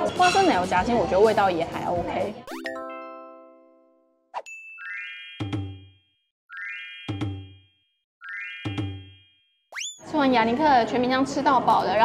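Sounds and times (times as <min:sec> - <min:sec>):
synthetic chime chord: 0:02.5 - 0:09.6.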